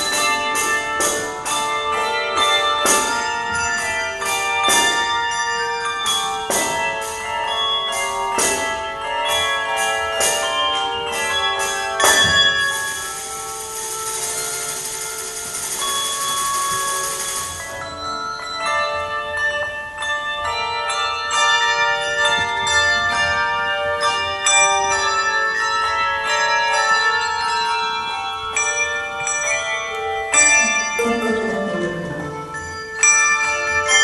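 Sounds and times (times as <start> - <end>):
handbells ringing: 0.0 - 34.0
tambourine: 6.0 - 18.0.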